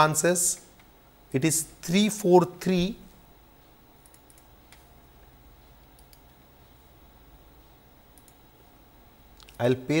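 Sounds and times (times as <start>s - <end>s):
faint computer mouse clicks: 4.0s - 4.9s, 5.8s - 6.4s, 8.2s - 8.4s.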